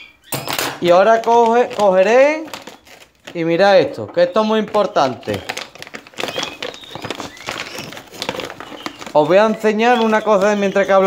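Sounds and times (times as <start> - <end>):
faint bird chirps: 0.0 - 0.6, 4.4 - 11.0
plastic bag crinkling: 0.1 - 11.0.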